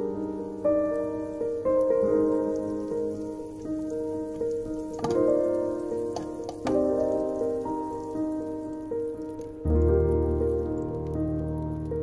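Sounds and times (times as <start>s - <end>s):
background piano music: 0.0s - 12.0s
butter sizzling and crackling: 0.0s - 12.0s.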